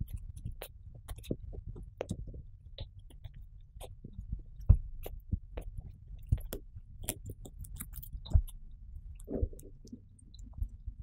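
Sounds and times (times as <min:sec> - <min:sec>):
soft low thumps: 0:00.0 - 0:07.1, 0:08.2 - 0:11.0
hamster nibbling carrot: 0:00.0 - 0:11.0
small crackles and clicks: 0:00.0 - 0:11.0.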